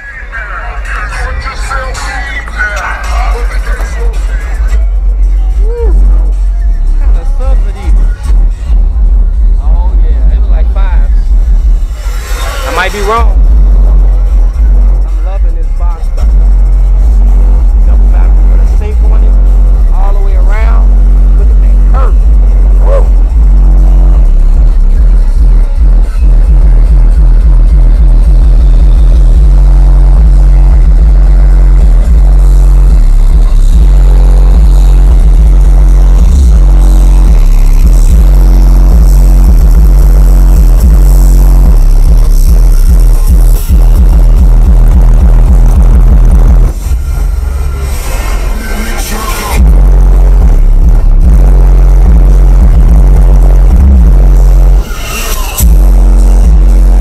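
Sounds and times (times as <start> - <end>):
bass-heavy music through subwoofers: 0.0 - 57.0.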